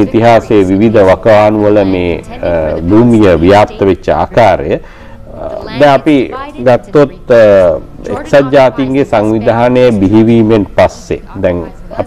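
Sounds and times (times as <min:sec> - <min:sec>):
man narrating: 0:00.0 - 0:12.0.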